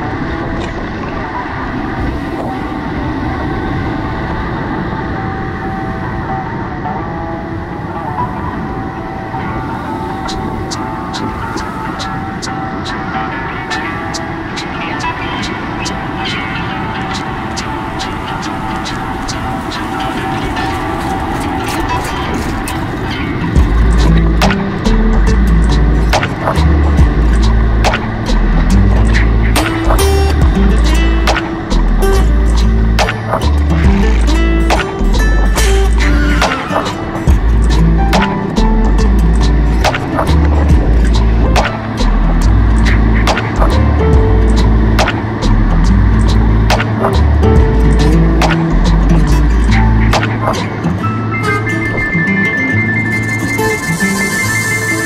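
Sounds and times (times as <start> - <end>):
whitewater rushing: 0.0 - 55.0
loud music with heavy bass: 23.6 - 55.0.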